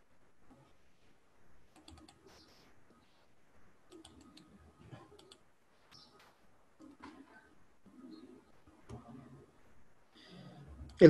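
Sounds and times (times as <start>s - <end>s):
faint keyboard typing: 1.7s - 3.0s, 3.8s - 7.4s.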